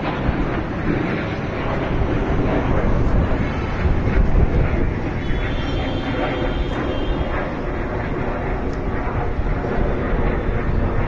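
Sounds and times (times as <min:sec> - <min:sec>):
fighter jet engine rumble: 0:00.0 - 0:11.0.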